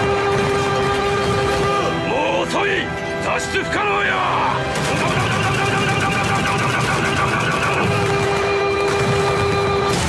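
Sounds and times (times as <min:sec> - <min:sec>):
rapid repeated hits: 0:00.0 - 0:02.0, 0:04.6 - 0:10.0
music: 0:00.0 - 0:10.0
shouted battle cries: 0:03.9 - 0:08.7.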